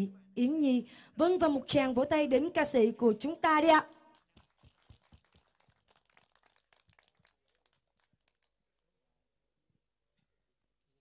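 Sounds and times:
faint hand claps: 3.8s - 8.6s.

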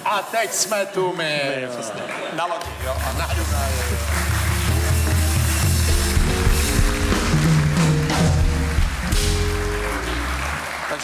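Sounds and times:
band playing with bass line: 2.7s - 11.0s.

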